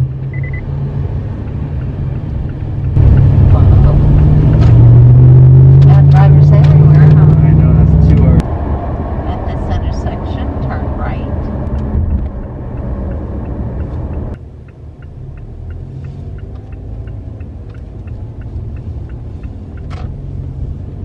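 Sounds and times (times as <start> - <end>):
low engine drone: 0.0 - 14.4
low road rumble: 0.0 - 21.0.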